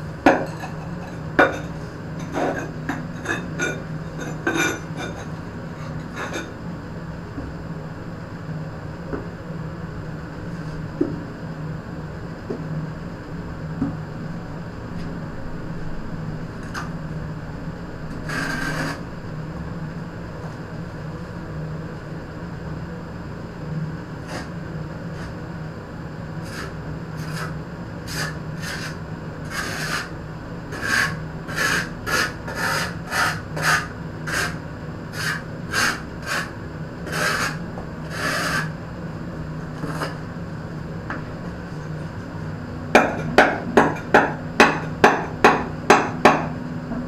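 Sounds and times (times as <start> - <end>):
scrape on wet mortar: 18.2 - 19.0, 24.2 - 24.5, 25.1 - 25.4, 26.4 - 30.1, 30.7 - 38.8, 39.8 - 40.2.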